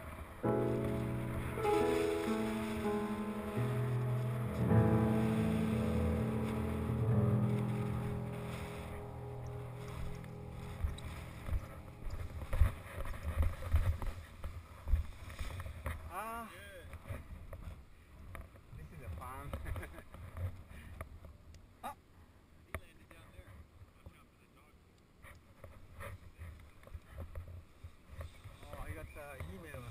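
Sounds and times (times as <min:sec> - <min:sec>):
solo piano music: 0:00.0 - 0:12.9
wind rumble on microphone: 0:00.0 - 0:16.0
low thumps: 0:00.4 - 0:14.1.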